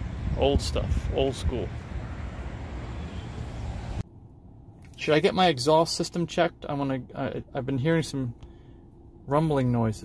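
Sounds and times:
wind rumbling on microphone: 0:00.0 - 0:04.0.

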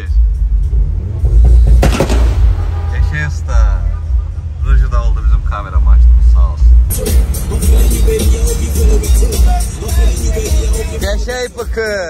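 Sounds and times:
car engines rumbling in traffic: 0:00.0 - 0:12.0
music: 0:00.0 - 0:12.0.

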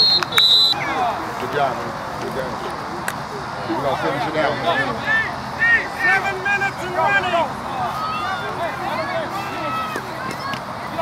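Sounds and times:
referee's whistle blasts: 0:00.0 - 0:00.9
voices of players and spectators: 0:00.0 - 0:11.0.

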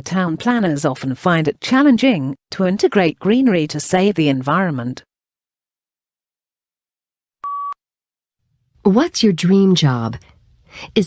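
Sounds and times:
person reading aloud: 0:00.0 - 0:05.0, 0:08.9 - 0:11.0
short electronic beep: 0:07.4 - 0:07.8.

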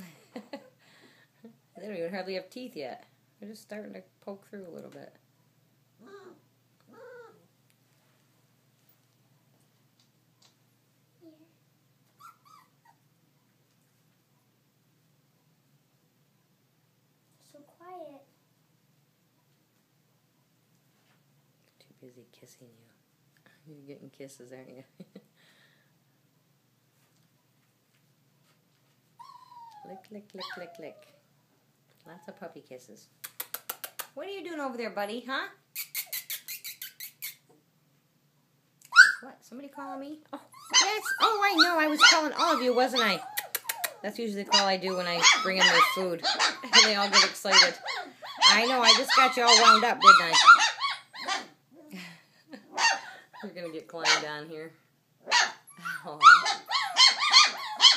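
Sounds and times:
puppies whimpering: 0:06.0 - 0:07.5, 0:12.2 - 0:13.0, 0:29.2 - 0:31.2, 0:38.9 - 0:39.2, 0:40.4 - 0:51.6, 0:55.3 - 0:57.9
faint clicks: 0:33.2 - 0:34.2, 0:43.4 - 0:44.0.

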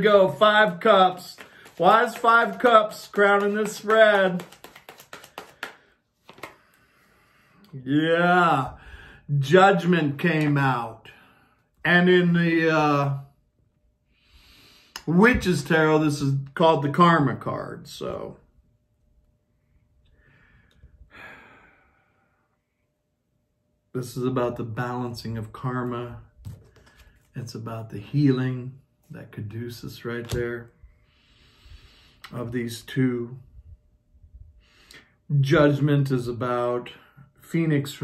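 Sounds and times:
cards being shuffled: 0:00.2 - 0:06.7, 0:26.4 - 0:27.3, 0:30.2 - 0:30.4.

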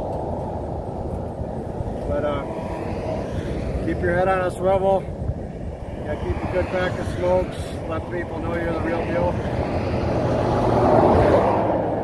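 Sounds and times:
highway traffic rumble: 0:00.0 - 0:12.0.

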